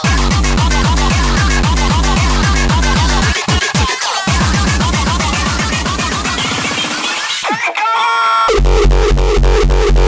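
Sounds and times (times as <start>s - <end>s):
distorted kick drums: 0.0s - 7.1s.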